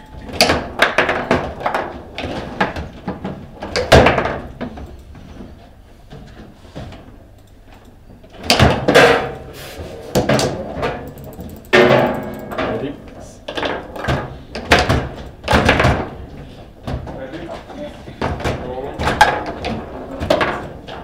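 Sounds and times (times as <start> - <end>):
foosball rods clacking: 0.1 - 17.1, 18.2 - 21.0.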